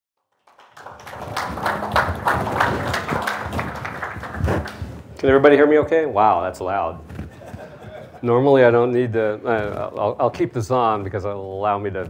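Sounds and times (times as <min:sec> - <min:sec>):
audience applauding: 0:00.3 - 0:05.1.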